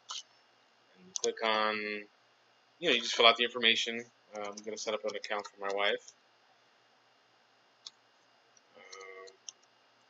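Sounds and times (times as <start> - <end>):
keyboard and mouse clicks: 8.6 - 9.7.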